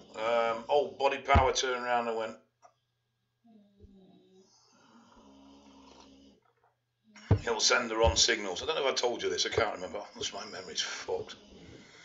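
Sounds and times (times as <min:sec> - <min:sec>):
faint low snoring: 0:00.0 - 0:02.4, 0:03.5 - 0:06.5, 0:07.2 - 0:12.0.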